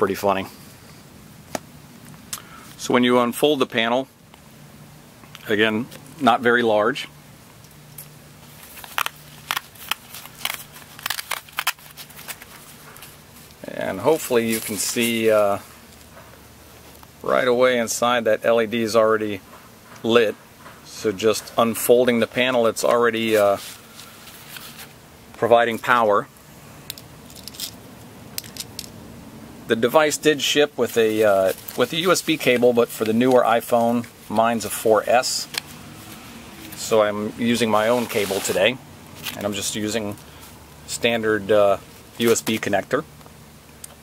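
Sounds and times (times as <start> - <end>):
low steady background noise: 0.0 - 44.0.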